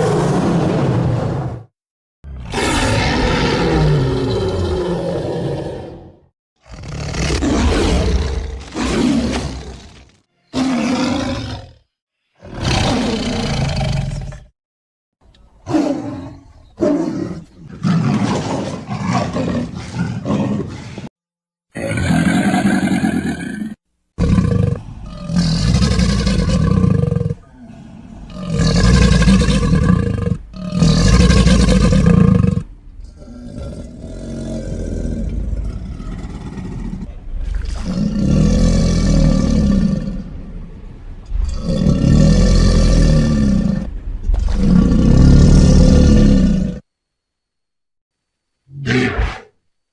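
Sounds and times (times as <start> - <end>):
dinosaur roars and growls: 0.0 - 14.5, 15.6 - 21.1, 21.7 - 46.9, 48.7 - 49.6.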